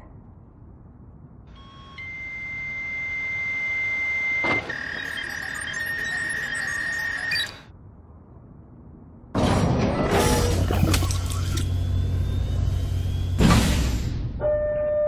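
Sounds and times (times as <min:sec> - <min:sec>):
high electronic tone: 0:01.6 - 0:07.7.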